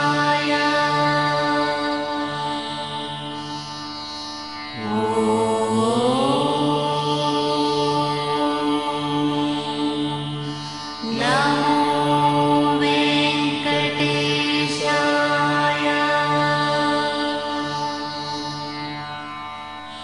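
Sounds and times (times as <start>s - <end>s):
person chanting long notes: 0.0s - 3.7s, 4.8s - 19.2s
steady drone: 0.0s - 20.0s.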